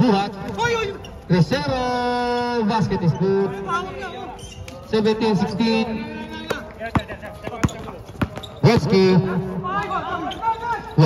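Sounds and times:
basketball bouncing on hard court: 0:06.5 - 0:09.0.

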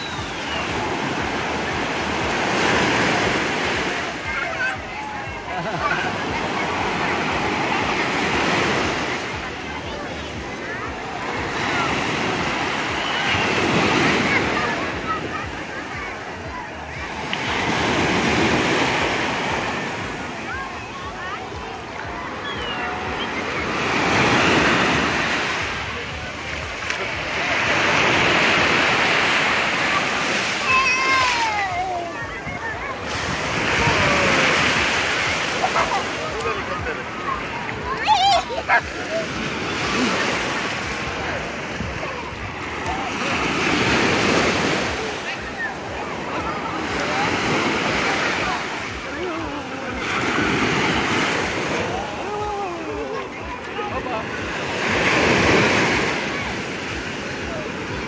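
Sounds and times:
faint distant voices: 0:00.0 - 0:58.0
small waves breaking: 0:00.0 - 0:58.0.

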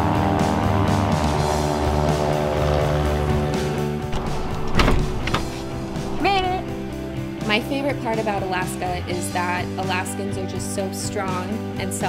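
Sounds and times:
propeller plane engine running: 0:00.0 - 0:09.1
background music: 0:00.0 - 0:12.0
loud whoosh: 0:04.0 - 0:07.5.

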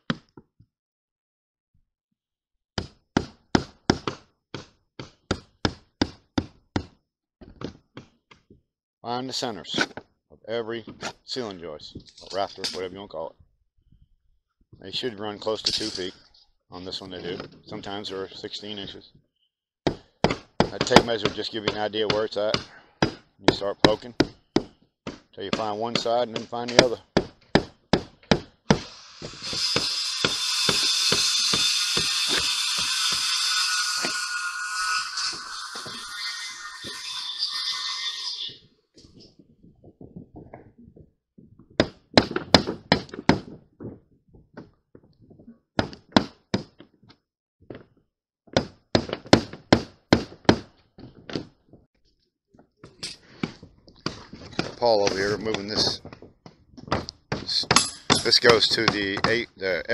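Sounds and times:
loud steady hiss: 0:28.8 - 0:34.2.

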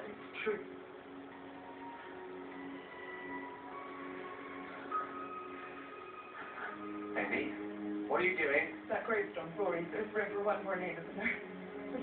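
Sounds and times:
slow music through television speaker: 0:00.0 - 0:12.0.

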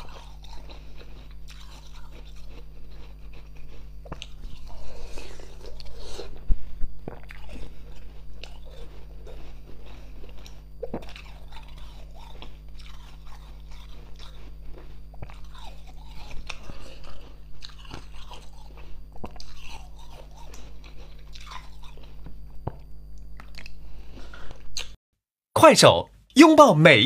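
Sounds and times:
ice being chewed and crunched: 0:00.0 - 0:24.6.

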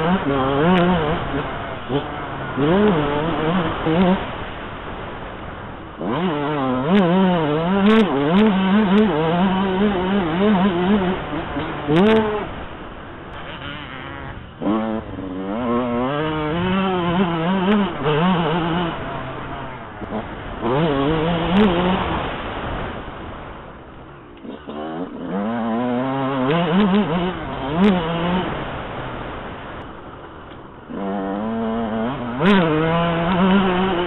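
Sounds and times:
two-stroke engine revving: 0:00.0 - 0:23.6, 0:24.4 - 0:29.9, 0:30.8 - 0:34.0.

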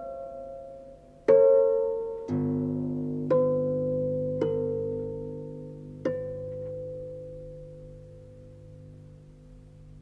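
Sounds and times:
solo harp playing: 0:00.0 - 0:09.9.

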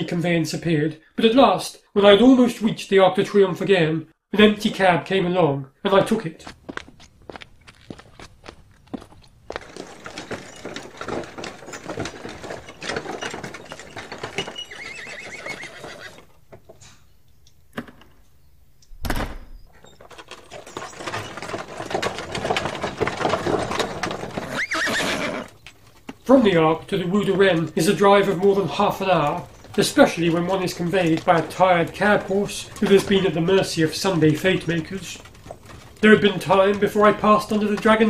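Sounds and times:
hooves clip-clopping: 0:05.9 - 0:16.8, 0:19.8 - 0:38.0
cab clattering rattle: 0:09.0 - 0:16.0, 0:19.8 - 0:38.0
horse whinnying: 0:09.8 - 0:16.4, 0:23.7 - 0:25.7.

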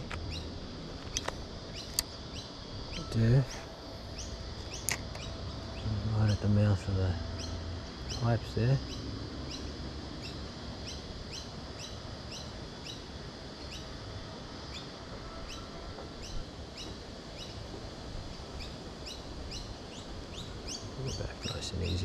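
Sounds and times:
birds chirping: 0:00.0 - 0:14.0, 0:14.6 - 0:22.0
outdoor background noise: 0:00.0 - 0:22.0.

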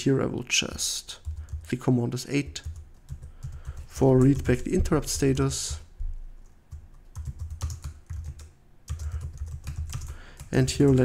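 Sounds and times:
typing on computer keyboard: 0:01.2 - 0:01.7, 0:02.6 - 0:05.7, 0:06.7 - 0:11.0.

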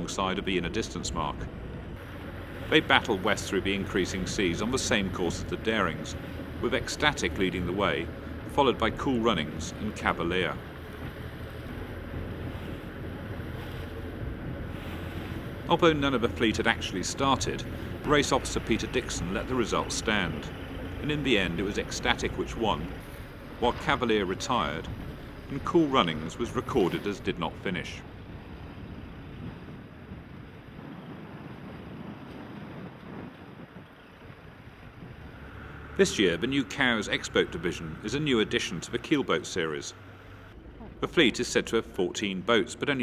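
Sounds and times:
steady low rumble: 0:00.0 - 0:30.9, 0:34.7 - 0:43.0
wind buffeting microphone: 0:00.0 - 0:38.6
choppy water splashing: 0:00.0 - 0:42.1
waves washing: 0:00.0 - 0:43.0.

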